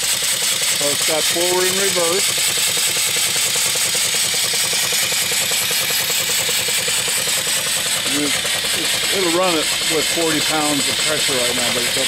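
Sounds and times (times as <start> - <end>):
steam engine chuffing: 0.0 - 12.0
steam hissing: 0.0 - 12.0.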